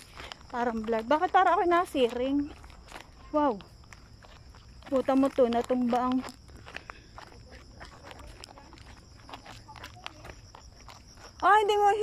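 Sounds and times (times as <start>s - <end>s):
footsteps on rocky trail: 0.0s - 12.0s.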